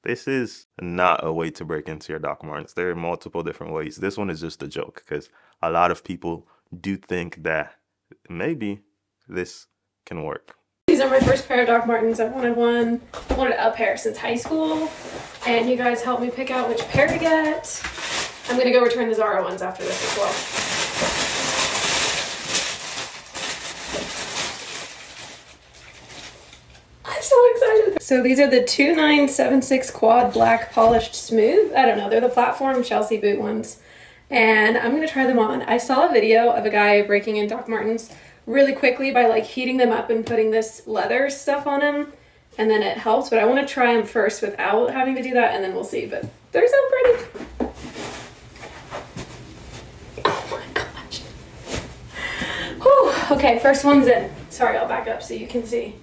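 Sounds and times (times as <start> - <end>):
wrapping paper rustling: 16.5 - 26.8, 47.8 - 49.9.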